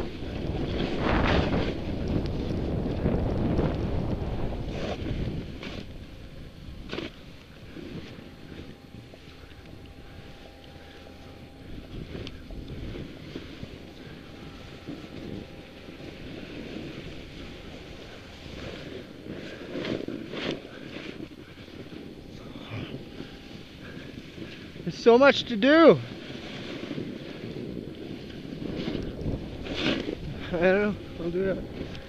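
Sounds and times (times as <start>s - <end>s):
wind on microphone: 0.0s - 32.0s
skis hissing through snow: 0.5s - 5.9s, 14.4s - 31.4s.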